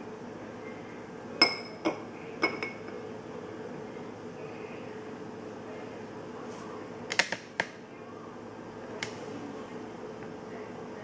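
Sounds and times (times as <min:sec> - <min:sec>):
cup clinking against glass: 0:01.4 - 0:03.0.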